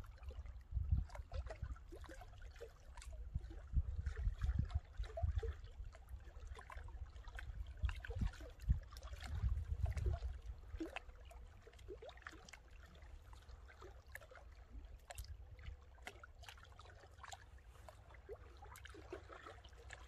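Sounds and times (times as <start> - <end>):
wind buffeting microphone: 0.0 - 1.7, 3.2 - 5.9, 6.8 - 10.9
small waves lapping on rocks: 0.0 - 20.0.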